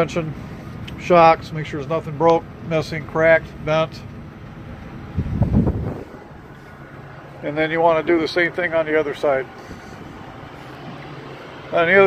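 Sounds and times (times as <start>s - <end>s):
wind buffeting microphone: 4.7s - 7.3s, 9.4s - 11.7s.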